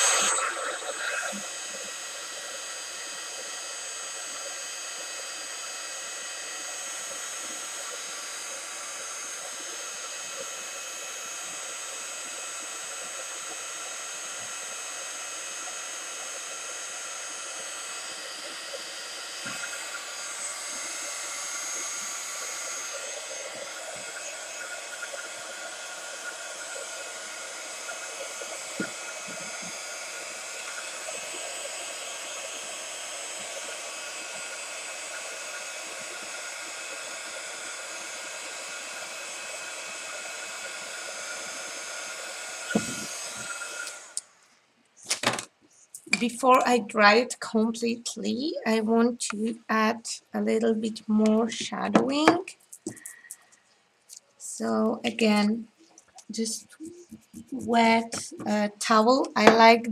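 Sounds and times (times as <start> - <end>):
heat gun blowing air: 0.0 - 44.3, 51.5 - 59.6.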